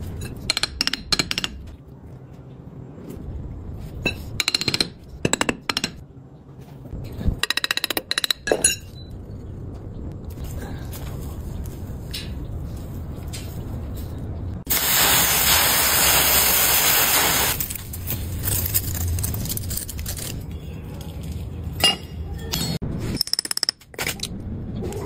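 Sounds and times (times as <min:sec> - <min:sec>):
sand pouring hiss: 0:14.7 - 0:17.6.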